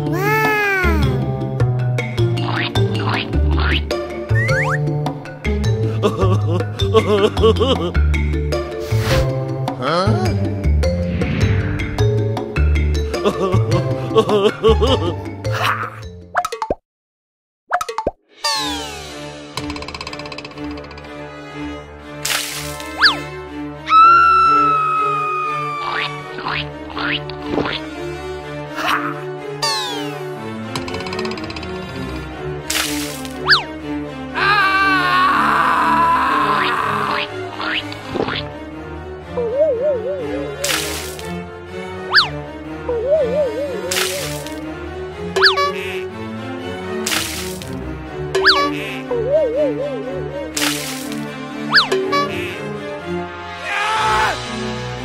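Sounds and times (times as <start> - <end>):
children's background music: 0.0 - 15.8, 39.2 - 53.7
cartoon plop sound effects: 45.4 - 45.8, 48.4 - 48.8, 51.7 - 52.3.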